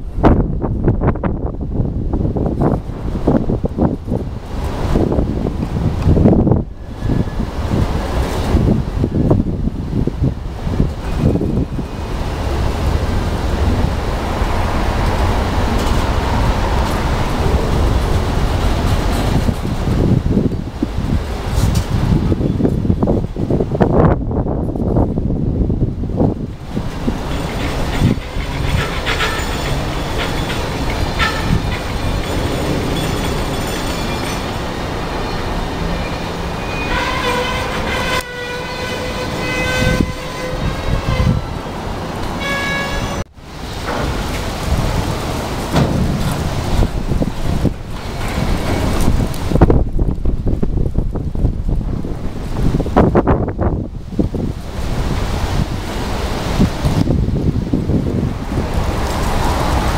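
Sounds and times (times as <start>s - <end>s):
train wheels rumbling on rails: 0.0s - 59.9s
wind on microphone: 0.0s - 59.9s
high-pitched wheel squeals: 27.3s - 41.7s.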